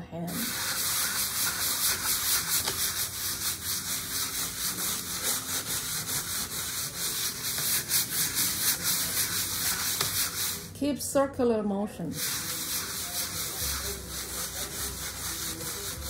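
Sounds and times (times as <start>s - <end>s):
sandpaper rubbing in circles: 0.3s - 10.8s, 12.1s - 16.0s.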